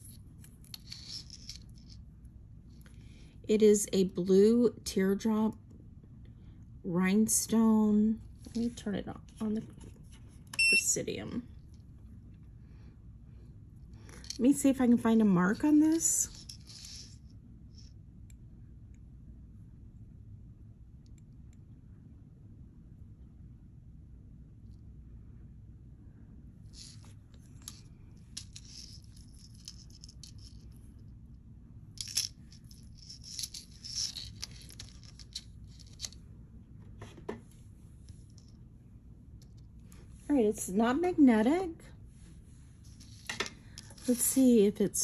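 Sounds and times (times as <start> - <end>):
necklace chain clinking: 0.0 - 2.0, 15.5 - 17.2, 26.7 - 30.9, 31.9 - 36.2
low steady hum: 0.0 - 45.0.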